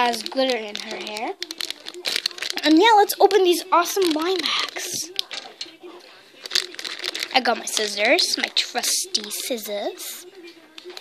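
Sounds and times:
foil packet crinkling: 0.0 - 9.6.

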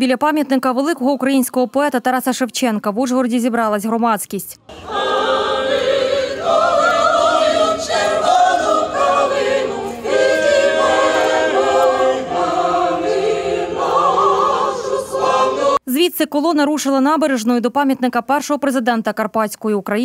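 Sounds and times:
choir singing: 4.7 - 15.8.

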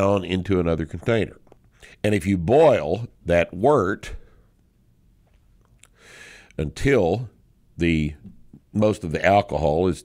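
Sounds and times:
faint mouth clicks: 5.6 - 6.0
soft breath in: 6.0 - 6.5.

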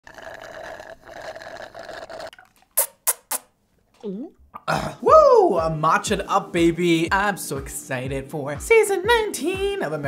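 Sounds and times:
slurping drink through a straw: 0.0 - 3.5.

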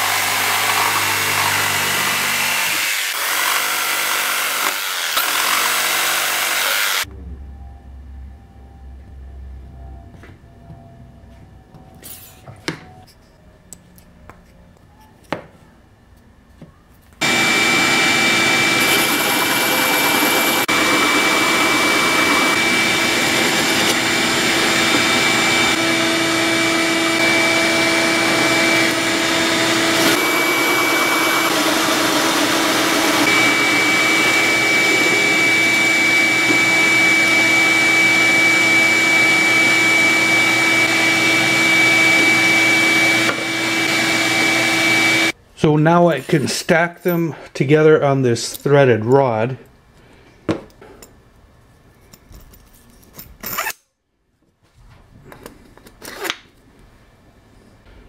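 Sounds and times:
drill press cutting wood: 0.0 - 7.0, 17.2 - 45.3
shop vacuum running: 0.0 - 7.7, 17.2 - 45.7.

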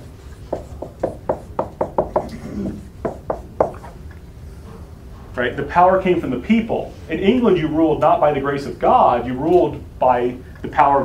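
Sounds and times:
sharp taps: 0.5 - 3.9.

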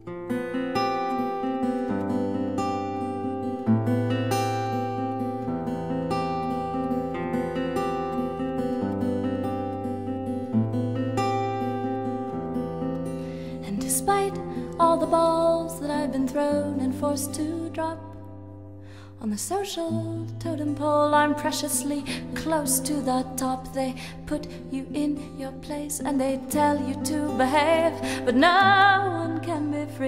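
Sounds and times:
solo acoustic guitar picking: 0.0 - 30.0.

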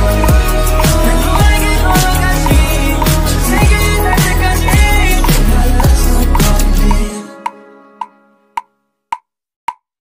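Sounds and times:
metronome clicks: 5.2 - 9.9.

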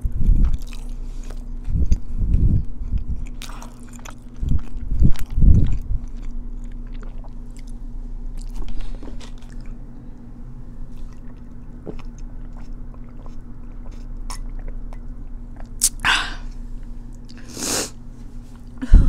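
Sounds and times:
crunchy chewing: 0.2 - 10.3, 10.9 - 17.6.

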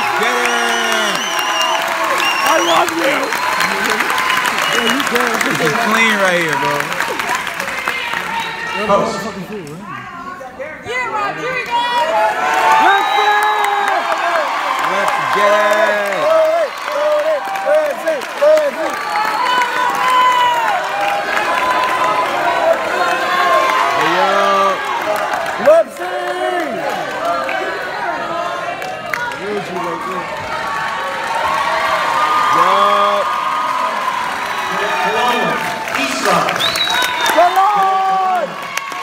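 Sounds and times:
clapping: 0.0 - 8.5, 12.8 - 22.8, 28.8 - 30.5, 35.3 - 39.0
crowd cheering and shouting: 0.0 - 39.0.

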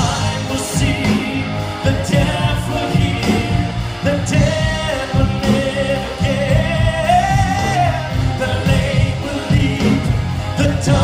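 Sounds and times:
electric guitars: 0.0 - 11.0
singers singing: 0.0 - 11.0
steady drum beat: 0.0 - 11.0.

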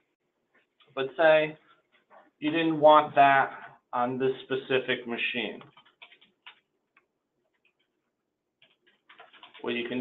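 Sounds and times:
keyboard keys clicking: 5.6 - 6.7, 8.6 - 9.8.

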